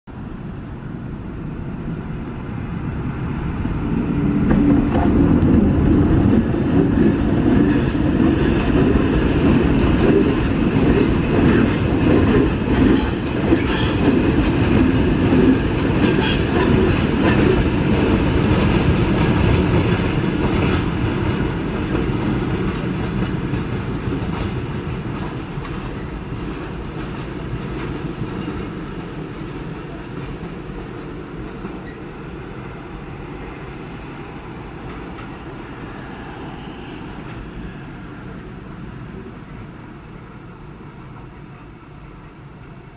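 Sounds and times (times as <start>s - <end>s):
train rumble: 0.1s - 42.9s
train wheels clattering on track: 4.4s - 38.4s.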